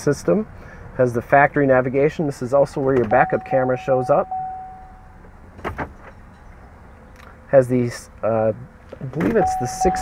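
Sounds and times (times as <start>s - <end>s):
idling truck cabin hum: 0.0s - 10.0s.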